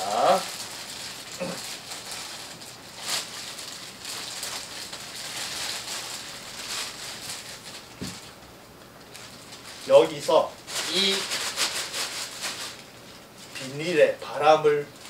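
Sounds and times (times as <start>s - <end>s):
plastic bag crinkling: 0.0s - 8.4s, 9.0s - 15.0s.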